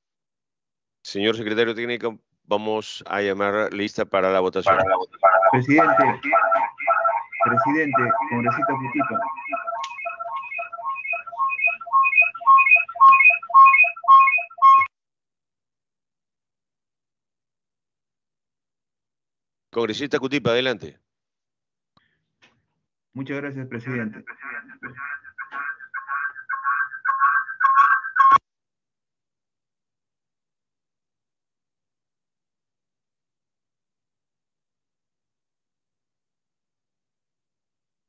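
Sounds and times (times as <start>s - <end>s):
man talking over video call: 1.1s - 6.6s, 7.4s - 9.3s, 23.1s - 26.4s
electronic phone ringtone beeping: 4.7s - 14.9s, 26.5s - 28.4s.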